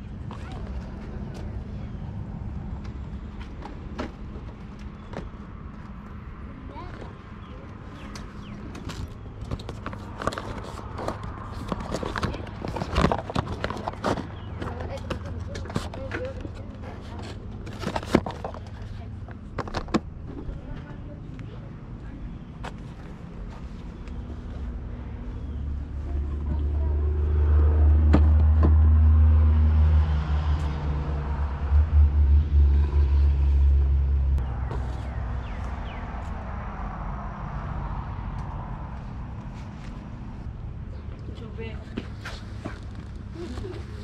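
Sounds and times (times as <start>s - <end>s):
loud low rumble: 25.0s - 38.9s.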